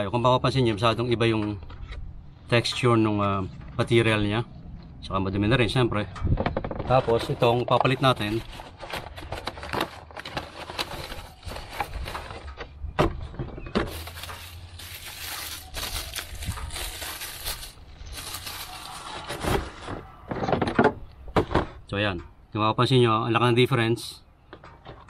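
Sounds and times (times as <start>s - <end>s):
cardboard box opening: 6.9s - 12.4s, 13.8s - 20.2s
plastic bag crinkling: 13.9s - 19.9s.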